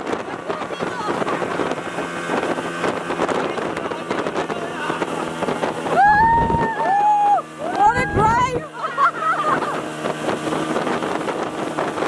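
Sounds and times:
rushing wind and water: 0:00.0 - 0:12.0
speedboat engine hum: 0:00.0 - 0:12.0
wind buffeting microphone: 0:00.0 - 0:12.0.

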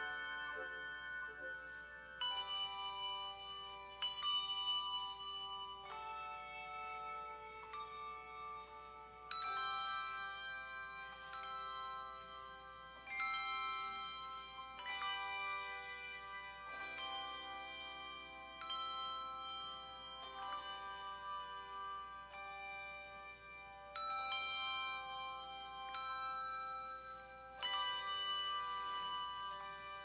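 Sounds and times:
handbell choir ringing: 0:00.0 - 0:30.0.

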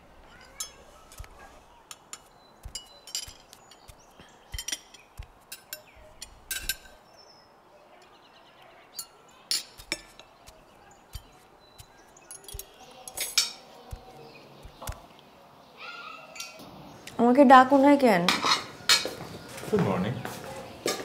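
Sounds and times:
dishes and cutlery clinking: 0:00.3 - 0:07.0, 0:09.0 - 0:15.0, 0:16.3 - 0:16.6, 0:18.2 - 0:19.2.

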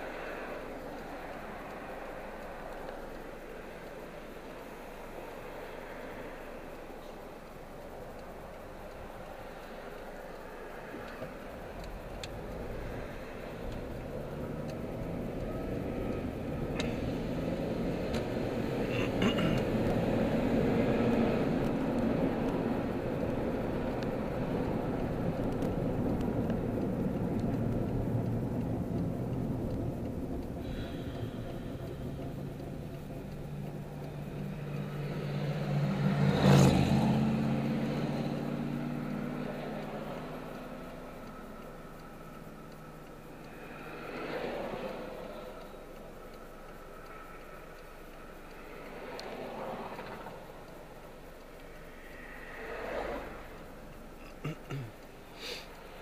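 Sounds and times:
car engine and road noise: 0:00.0 - 0:56.0
low engine hum: 0:00.0 - 0:56.0.

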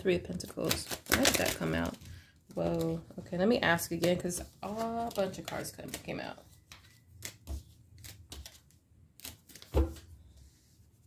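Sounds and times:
cards clicking and tapping: 0:04.0 - 0:10.0.

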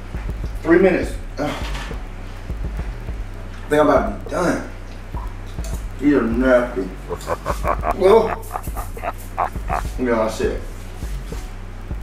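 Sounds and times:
man whimpering in pain: 0:07.1 - 0:09.9.

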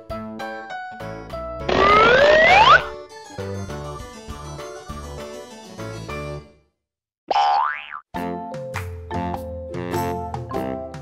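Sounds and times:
upbeat children's music: 0:00.0 - 0:06.7, 0:08.1 - 0:11.0
cartoon pitch glide effect: 0:01.7 - 0:03.0.

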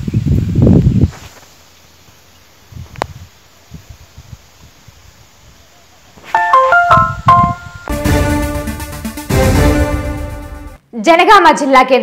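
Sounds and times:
bright keyboard notes: 0:06.4 - 0:10.7
theme music with deep bass: 0:06.4 - 0:10.8.

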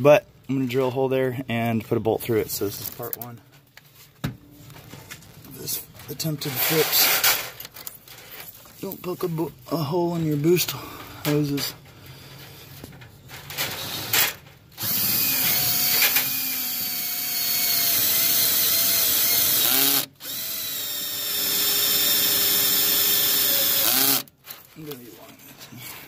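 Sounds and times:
cordless drill whine: 0:14.8 - 0:24.3.

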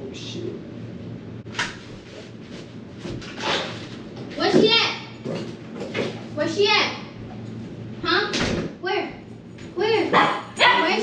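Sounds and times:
dog barking: 0:10.1 - 0:11.0.

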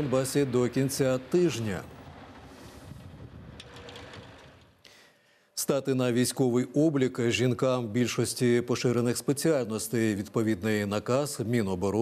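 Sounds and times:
snow plough truck clattering: 0:00.0 - 0:04.8.

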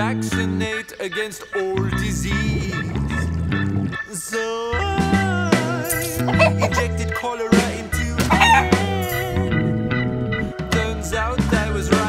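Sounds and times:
pop backing music: 0:00.0 - 0:12.0
rooster crowing: 0:08.3 - 0:08.8.

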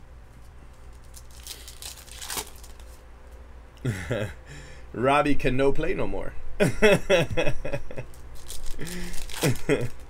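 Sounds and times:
foil wrapper crinkling and tearing: 0:00.8 - 0:03.0, 0:08.1 - 0:10.0.

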